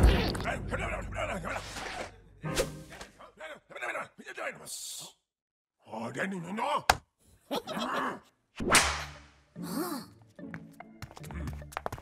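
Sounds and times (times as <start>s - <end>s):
cartoon whip-crack swish: 8.6s - 9.2s.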